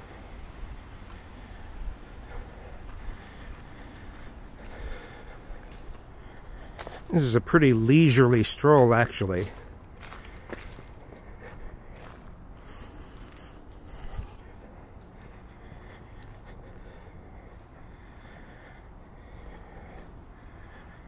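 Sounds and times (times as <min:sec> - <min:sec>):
footsteps on dirt trail: 0:00.0 - 0:21.0
person breathing: 0:00.0 - 0:21.0.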